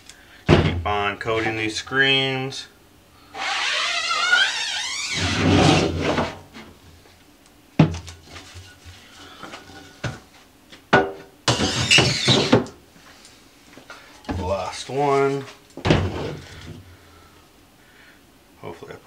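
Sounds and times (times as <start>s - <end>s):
coater scraping up screen mesh: 3.4s - 6.3s.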